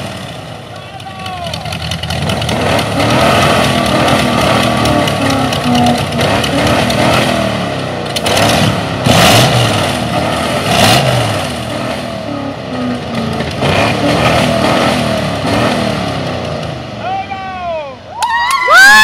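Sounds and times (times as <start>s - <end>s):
engine revving: 0.0s - 17.0s
loud rushing exhaust bursts: 0.0s - 17.4s.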